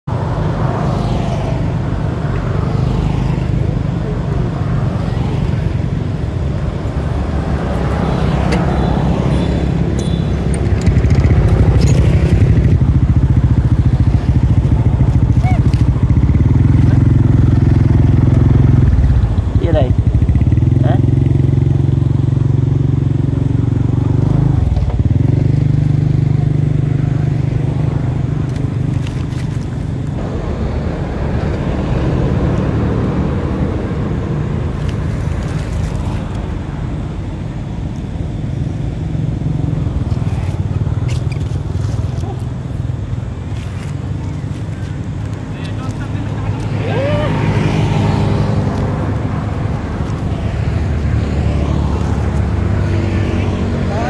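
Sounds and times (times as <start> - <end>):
motorcycle engine idling: 8.6 - 29.0.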